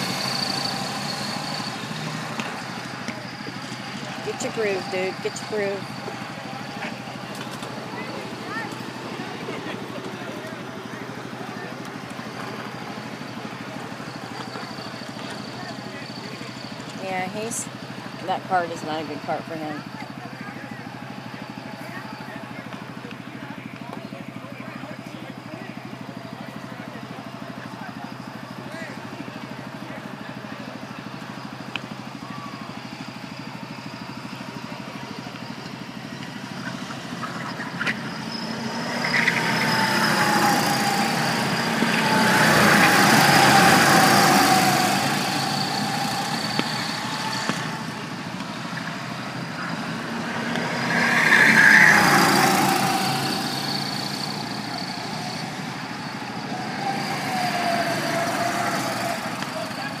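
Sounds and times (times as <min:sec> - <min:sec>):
go-kart engines running: 0:00.0 - 1:00.0.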